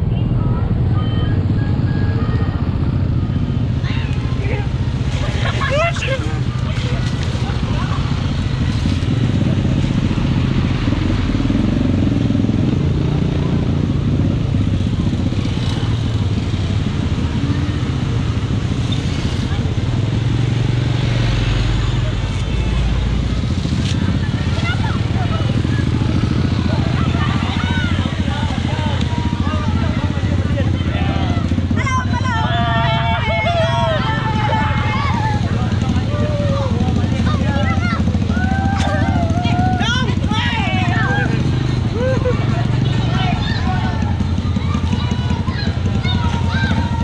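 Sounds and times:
motorcycle engine running: 0.0 - 47.0
people's voices: 0.0 - 47.0.

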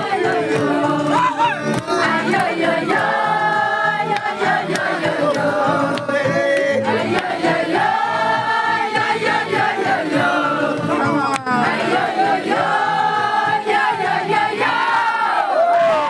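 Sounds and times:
crowd singing a chant: 0.0 - 15.6
crowd noise: 0.0 - 16.0.

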